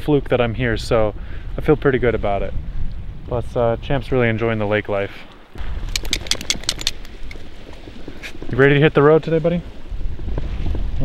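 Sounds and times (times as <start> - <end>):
wind rumble on microphone: 0.0 - 11.0
sharp clicks and rattles: 5.9 - 7.4.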